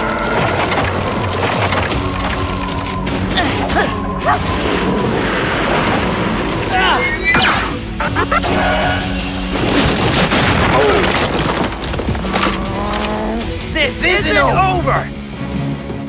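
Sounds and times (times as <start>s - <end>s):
cartoon action music: 0.0s - 15.1s.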